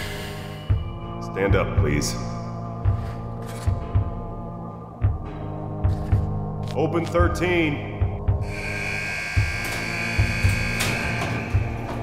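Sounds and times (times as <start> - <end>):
dramatic music with pulsing beat: 0.0 - 12.0
electric buzzer: 8.4 - 12.0.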